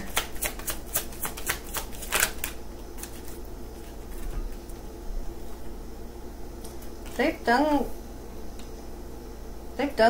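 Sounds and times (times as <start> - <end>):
cards being shuffled: 0.0 - 4.3.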